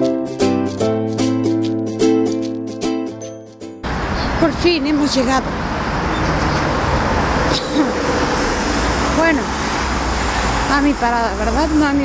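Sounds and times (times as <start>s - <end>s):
road traffic rumble: 3.8s - 12.0s.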